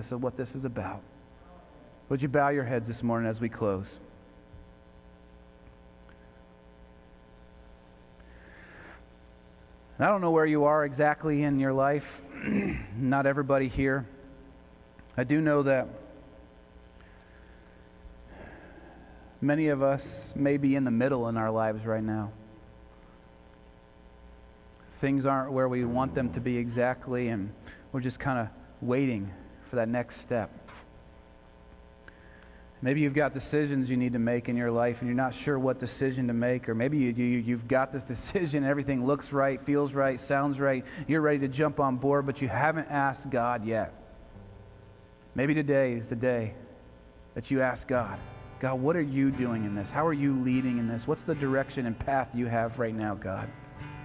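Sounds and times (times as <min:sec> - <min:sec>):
electrical mains hum: 0:00.0 - 0:54.0
faint hiss: 0:00.0 - 0:54.0.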